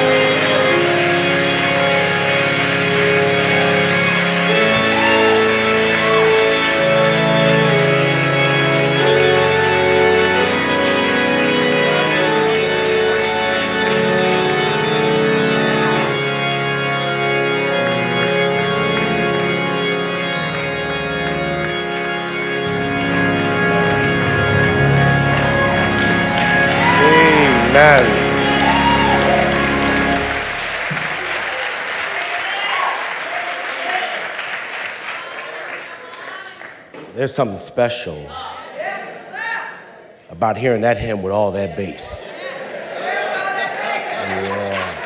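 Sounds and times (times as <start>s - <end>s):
organ playing sustained chords: 0.0s - 33.0s, 40.4s - 42.1s.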